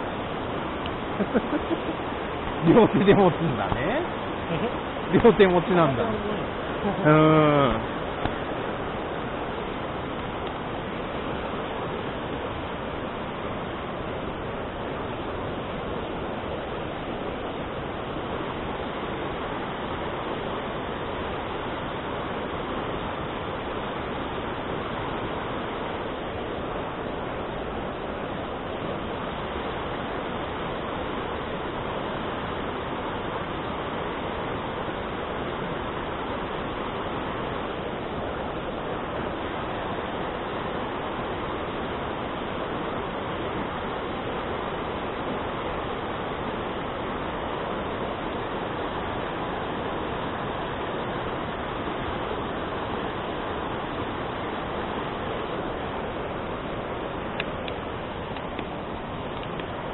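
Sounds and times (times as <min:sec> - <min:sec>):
stream rushing over rocks: 0:00.0 - 0:59.9.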